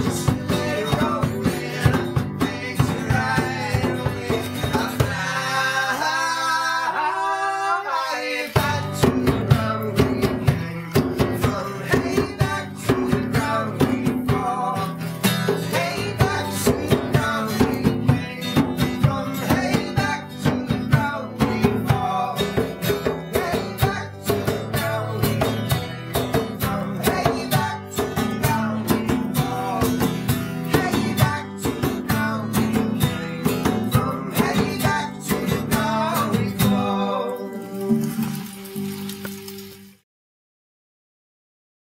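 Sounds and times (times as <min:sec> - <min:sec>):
hand drum beats: 0:00.0 - 0:05.4, 0:08.6 - 0:38.5
strummed acoustic guitar: 0:00.0 - 0:39.8
acoustic bass guitar: 0:00.0 - 0:39.9.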